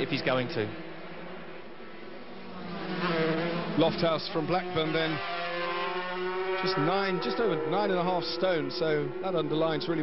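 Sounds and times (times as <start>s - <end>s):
racing motorcycles buzzing: 0.0s - 10.0s.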